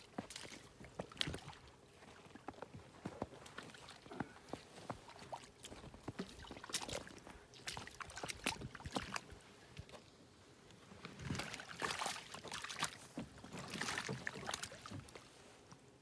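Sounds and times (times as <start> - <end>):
scraping and rustling in canoe: 9.4 - 15.9.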